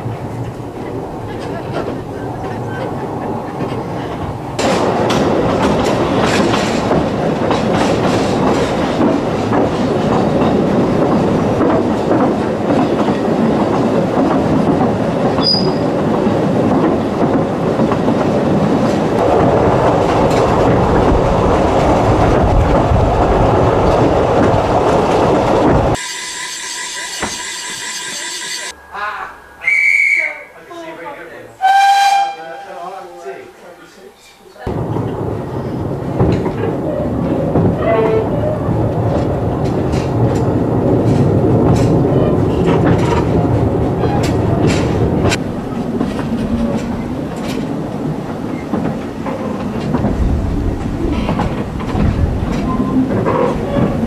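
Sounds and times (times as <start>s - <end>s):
train rumble: 0.0s - 26.0s, 27.0s - 54.0s
wheels clickety-clack: 0.0s - 26.0s, 34.7s - 54.0s
short whistle-like notes: 29.6s - 30.5s.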